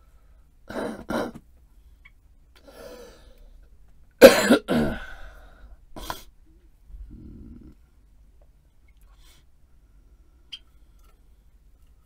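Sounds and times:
man coughing: 4.2 - 5.2.

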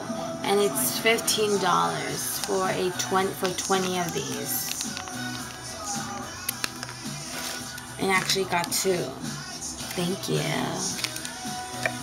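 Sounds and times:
background music sustained notes: 0.0 - 12.0.

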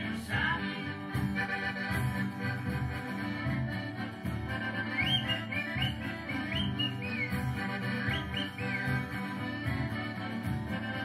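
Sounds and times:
background music: 0.0 - 11.0
bird chirps: 5.0 - 7.4, 8.0 - 8.9.

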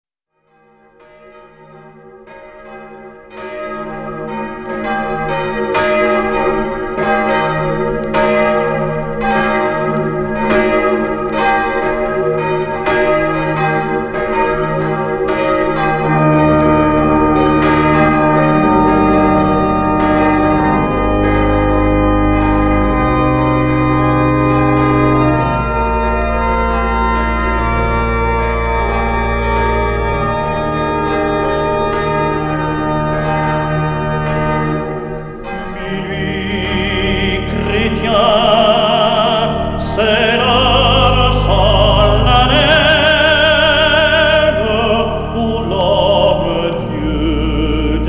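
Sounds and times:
church bells ringing: 0.4 - 48.0
organ low chords: 2.6 - 48.0.

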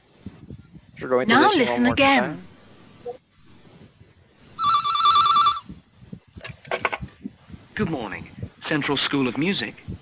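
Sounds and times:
electronic telephone ringing: 4.6 - 5.7.

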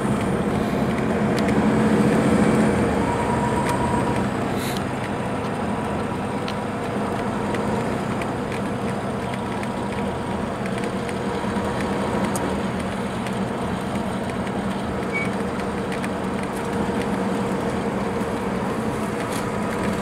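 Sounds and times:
diesel engine droning: 0.0 - 20.0
road and tyre noise: 0.0 - 20.0.

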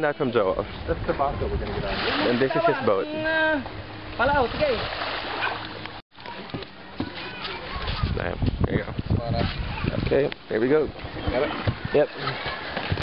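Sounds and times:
water splashing against boat: 0.9 - 13.0
voices calling: 9.6 - 13.0.

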